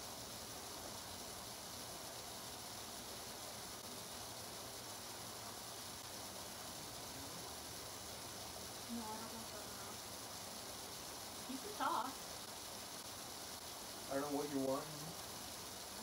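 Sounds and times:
faint low hum: 0.0 - 16.0
steady hiss: 0.0 - 16.0.

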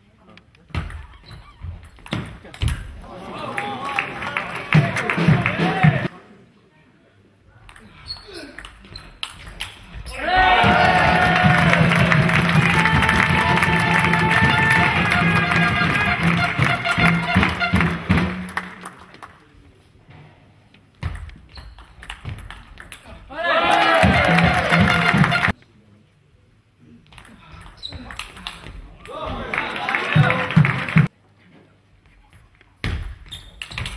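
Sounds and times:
loud voices: 3.0 - 6.1, 10.1 - 17.8, 23.3 - 25.5, 29.1 - 31.1
music: 11.4 - 19.0, 24.0 - 25.5.

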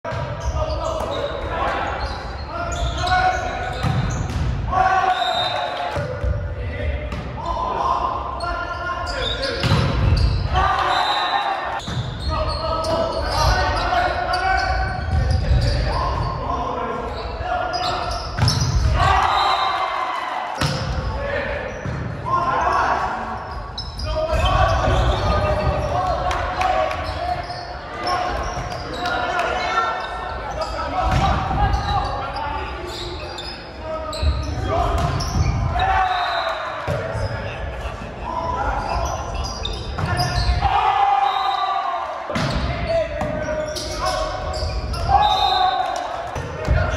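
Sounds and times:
players calling and shouting: 0.0 - 46.9.

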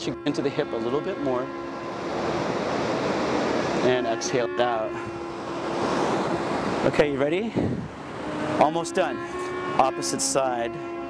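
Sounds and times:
ocean surf breaking on beach: 1.8 - 4.0, 5.2 - 7.0.

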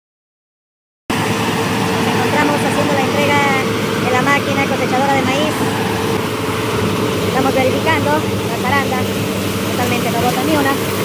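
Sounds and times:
combine harvester running: 1.1 - 11.0.

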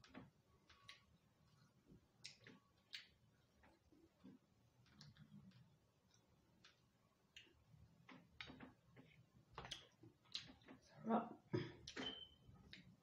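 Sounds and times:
chewing and eating sounds: 0.6 - 7.6.

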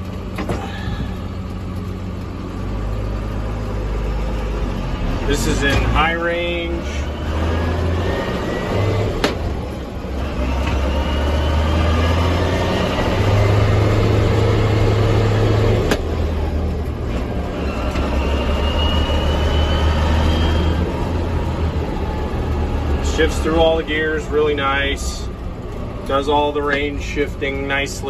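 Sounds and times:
tractor diesel engine pulling: 0.0 - 28.0
transmission whine: 11.8 - 28.0.

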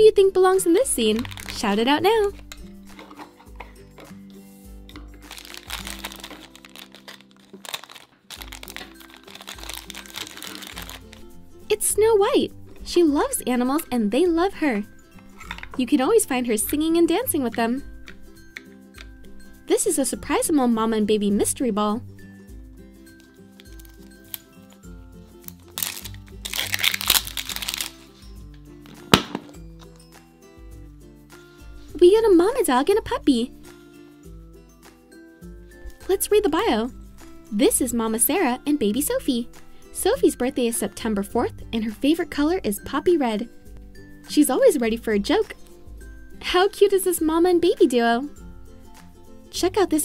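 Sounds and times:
light background music: 0.0 - 50.0
plastic wrapper crinkling: 1.0 - 3.8, 5.2 - 11.3, 23.2 - 24.8, 25.4 - 28.2
plastic capsule cracking open: 1.2 - 1.7, 5.2 - 11.2, 23.6 - 24.8, 25.4 - 28.0.

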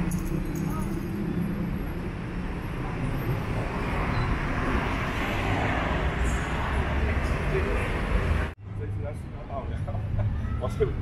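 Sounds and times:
passing cars rumbling: 0.0 - 11.0.

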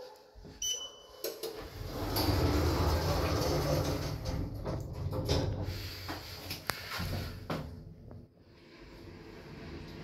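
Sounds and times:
high beep of lift button: 0.6 - 1.1
lift doors sliding shut: 1.6 - 6.0.

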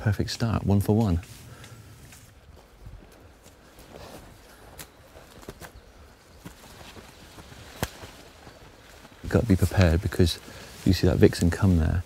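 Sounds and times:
footsteps through undergrowth: 0.0 - 12.0
leaves and twigs crackling: 0.0 - 12.0
twig snapping: 4.7 - 5.8, 7.4 - 8.2.

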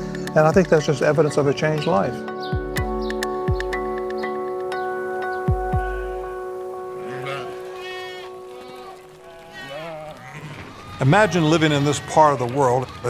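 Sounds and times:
held music chord: 0.0 - 9.5
sheep and goats bleating: 5.6 - 13.0.

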